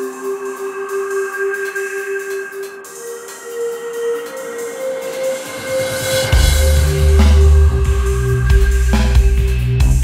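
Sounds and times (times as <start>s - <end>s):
synthesized drone music: 0.0s - 10.0s.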